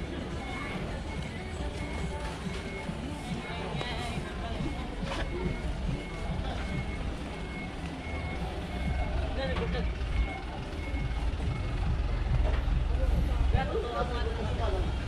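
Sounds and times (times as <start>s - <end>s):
diesel engine running: 0.0s - 15.0s
truck reversing alarm beeps: 0.0s - 15.0s.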